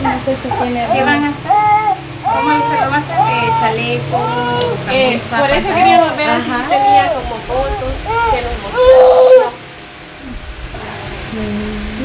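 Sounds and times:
toddler whining cry: 0.0 - 4.8, 5.6 - 9.6.

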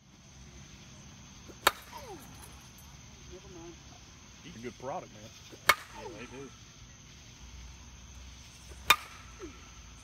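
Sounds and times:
bat striking softball: 1.5 - 2.6, 5.5 - 6.1, 8.6 - 9.6.

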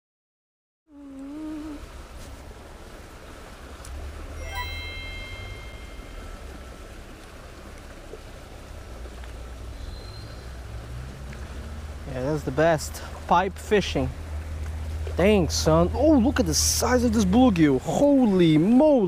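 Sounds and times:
creek water rushing: 1.0 - 19.0
held high tone: 4.4 - 6.6.

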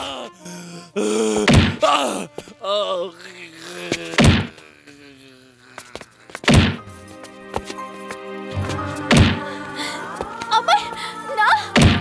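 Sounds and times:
background music: 0.0 - 4.8, 5.6 - 12.0
heavy punch sound effects: 1.5 - 1.8, 4.2 - 4.5, 6.5 - 6.8, 9.1 - 9.4.

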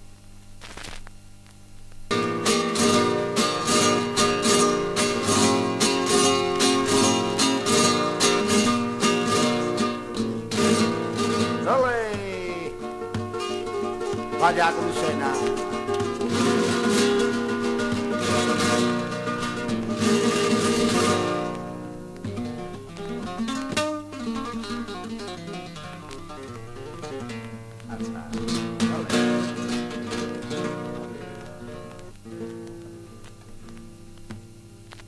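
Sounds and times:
flamenco acoustic guitar: 1.8 - 35.0.

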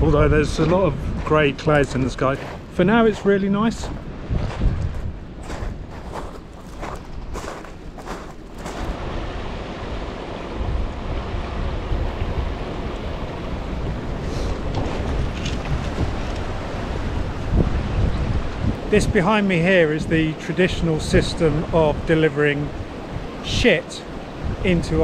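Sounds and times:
wind on microphone: 0.0 - 25.0
footsteps crunching on shingle: 0.6 - 9.0.

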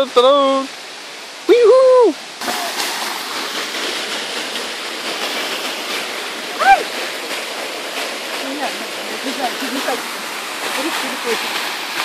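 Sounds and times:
waterfall rushing over rock: 0.0 - 12.0
person shouting: 6.6 - 6.9.

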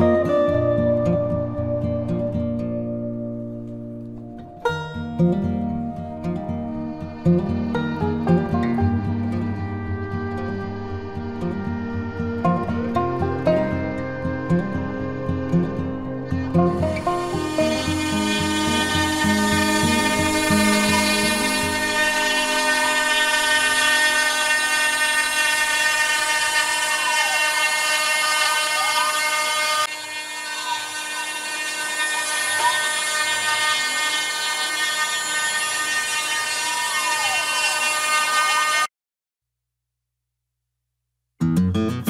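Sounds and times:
low music: 0.0 - 27.6
router spindle whine: 5.7 - 38.9
stepper motors rising and falling: 16.5 - 38.9.

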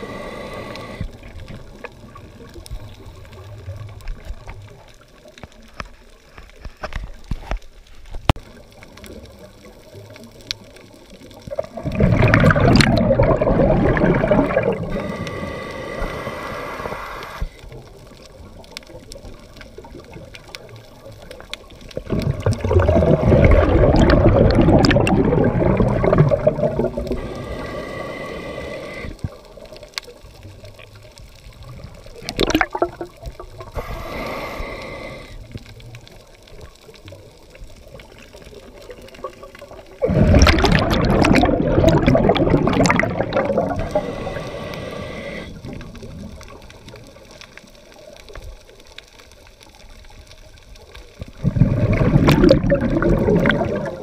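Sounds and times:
regulator hiss: 0.0 - 1.3, 14.9 - 17.7, 27.1 - 29.2, 33.6 - 35.5, 43.8 - 45.6
exhaled bubbles underwater: 8.4 - 48.8, 49.4 - 54.0.

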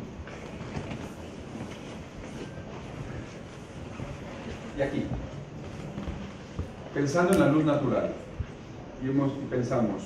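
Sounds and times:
low room rumble and hiss: 0.0 - 10.0.

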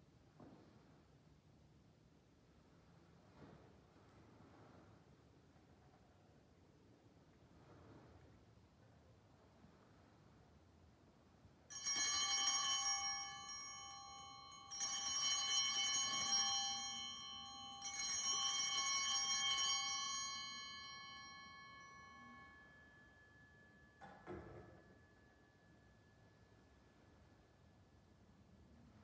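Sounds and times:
altar bells ringing: 11.7 - 26.9.

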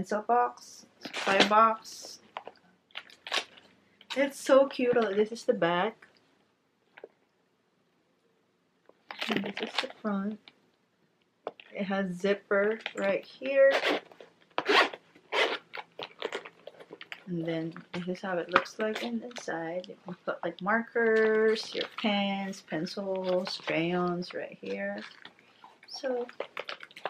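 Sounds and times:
zipper pulled open: 13.6 - 17.0
pencil box clicks and rustles: 15.8 - 19.5, 23.1 - 27.0.

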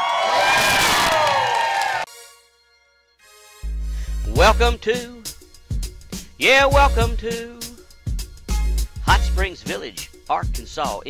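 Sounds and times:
crowd cheering and whooping: 0.0 - 2.1.

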